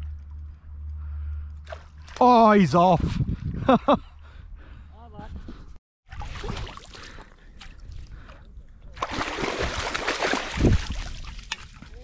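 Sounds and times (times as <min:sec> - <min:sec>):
fish splashing in water: 0:09.0 - 0:11.4.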